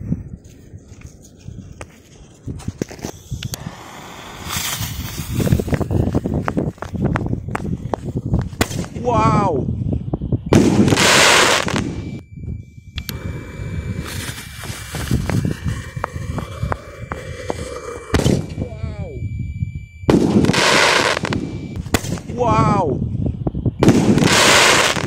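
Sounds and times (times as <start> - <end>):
firework crackling and popping: 2.6 - 9.0, 10.5 - 11.9, 14.0 - 18.4, 20.1 - 22.3, 23.8 - 25.0
firework hissing rush of sparks: 3.6 - 6.3, 14.0 - 18.2
sharp crack: 8.5 - 9.0, 20.1 - 22.4
thin steady whistle: 12.0 - 20.2.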